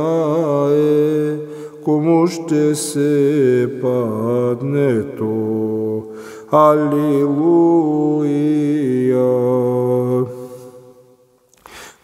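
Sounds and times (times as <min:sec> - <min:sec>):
man chanting: 0:00.0 - 0:10.9.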